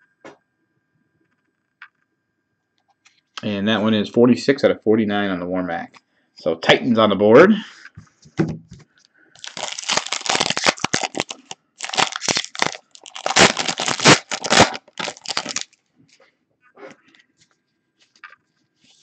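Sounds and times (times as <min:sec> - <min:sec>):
foil wrapper crinkling and tearing: 0:09.4 - 0:15.8.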